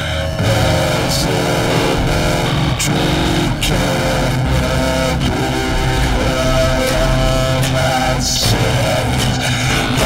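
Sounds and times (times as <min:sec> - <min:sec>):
distorted synthesizer drones: 0:00.0 - 0:10.0.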